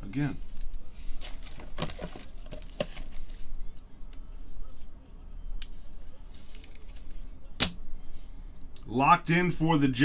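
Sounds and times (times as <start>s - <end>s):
card and plastic rustling: 0.5s - 3.5s, 6.2s - 7.3s.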